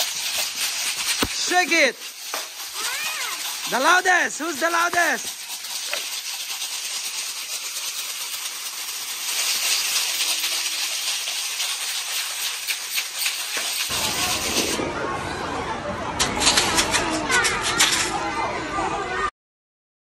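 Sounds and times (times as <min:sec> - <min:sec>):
paper-tube shakers rattling: 0:00.0 - 0:14.8, 0:16.2 - 0:18.2
children's voices: 0:02.7 - 0:03.6, 0:13.9 - 0:19.3.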